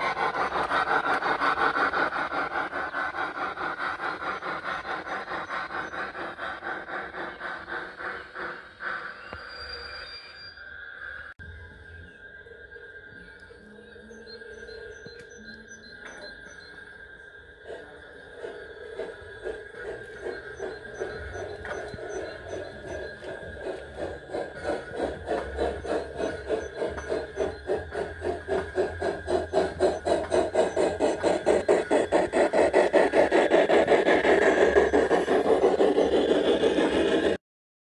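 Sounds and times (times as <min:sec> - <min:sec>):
model steam locomotive running: 0:00.0 - 0:10.5, 0:13.0 - 0:37.4.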